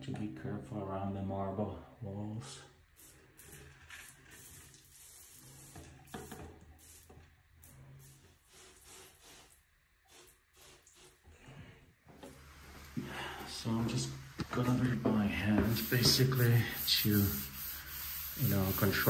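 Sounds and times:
pump sprayer hissing bursts: 3.0s - 7.1s, 7.8s - 11.2s, 12.2s - 19.0s.

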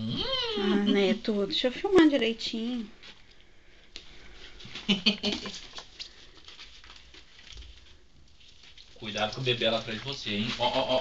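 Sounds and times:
ferrets scratching and rustling: 4.3s - 11.0s
person's voice or laughter: 10.5s - 11.0s.

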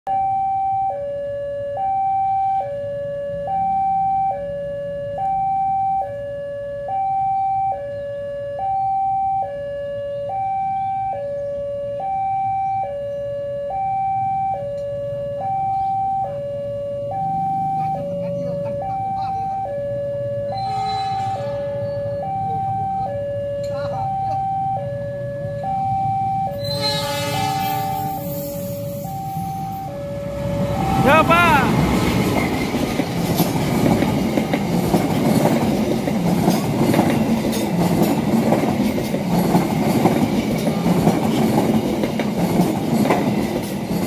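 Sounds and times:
level crossing two-tone alarm: 0.1s - 31.7s.

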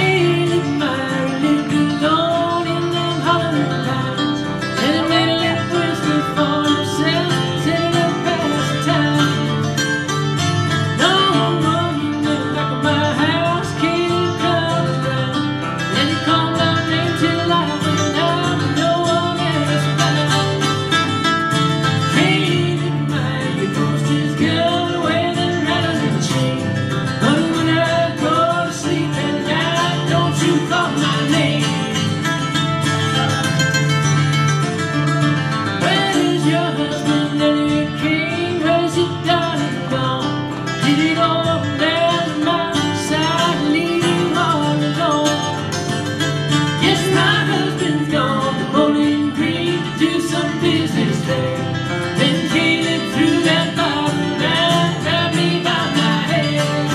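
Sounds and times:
person singing: 0.0s - 33.9s, 35.1s - 56.9s
acoustic guitars playing: 0.0s - 56.9s.

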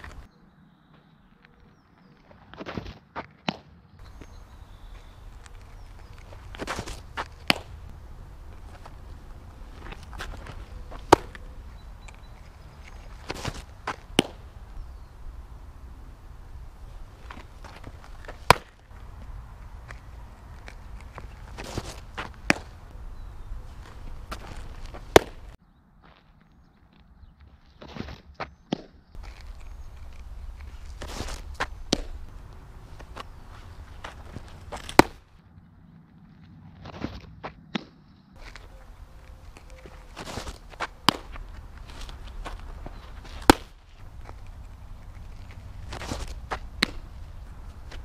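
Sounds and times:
shoes scuffing on dirt: 0.0s - 35.4s, 36.4s - 48.0s
softball smacking into mitt: 6.4s - 8.0s, 9.8s - 11.4s, 13.2s - 14.6s, 17.2s - 20.0s, 20.6s - 22.9s, 23.8s - 25.6s, 30.9s - 32.4s, 34.0s - 35.2s, 39.6s - 44.4s, 45.9s - 47.1s.

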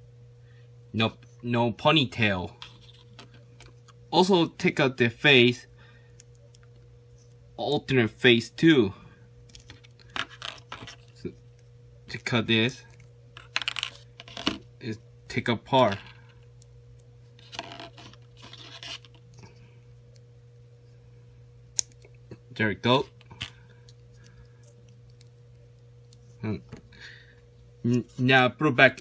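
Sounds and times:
low steady hum: 0.0s - 29.0s
plastic parts scratching and clicking: 9.5s - 11.2s, 12.9s - 14.6s, 17.4s - 19.3s.

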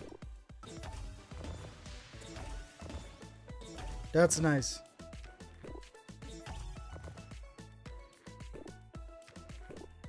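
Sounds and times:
game music with steady beat: 0.0s - 10.0s.

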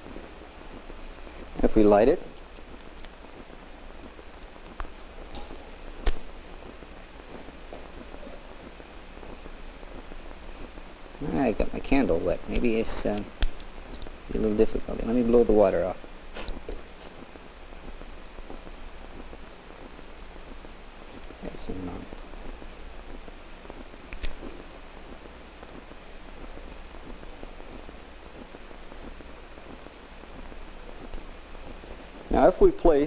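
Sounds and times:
film soundtrack hiss and hum: 0.0s - 33.0s
faint ticks: 2.3s - 3.5s, 4.1s - 6.3s, 12.5s - 14.2s, 22.5s - 32.2s.

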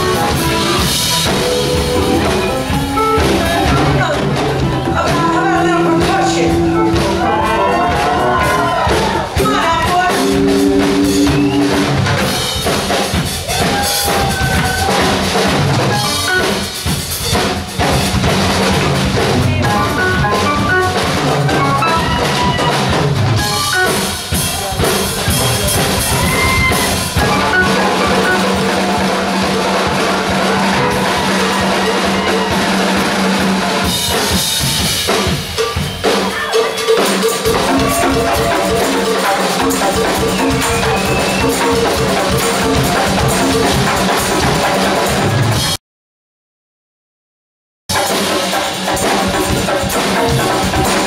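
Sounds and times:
live band playing: 0.0s - 45.8s, 47.9s - 51.0s.

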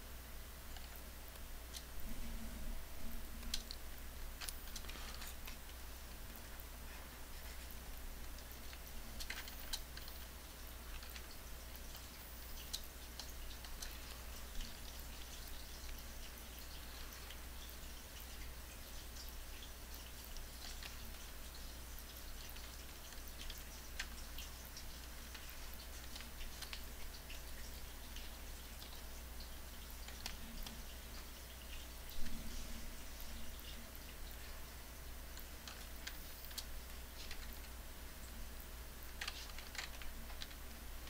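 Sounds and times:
steady low hum: 0.0s - 41.0s
computer keyboard typing: 39.1s - 40.6s.

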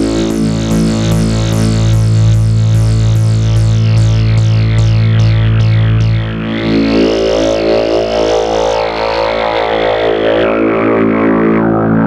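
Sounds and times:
buzzy synthesizer drone: 0.0s - 12.0s.

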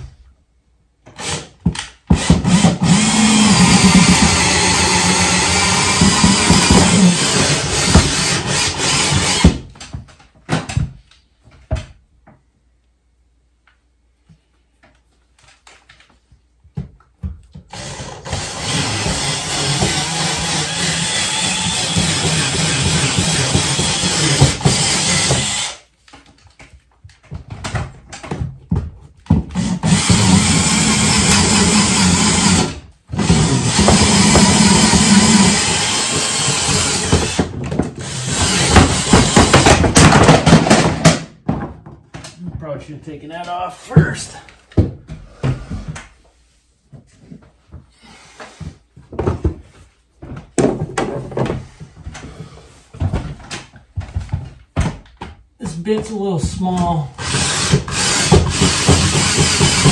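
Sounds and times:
cordless drill running under load: 2.2s - 9.6s, 17.7s - 25.8s, 29.6s - 39.6s, 57.2s - 59.9s.

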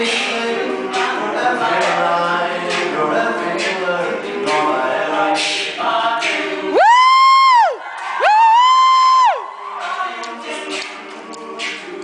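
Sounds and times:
male a cappella singing: 0.0s - 6.8s, 9.8s - 12.0s
vocal percussion: 0.0s - 12.0s.

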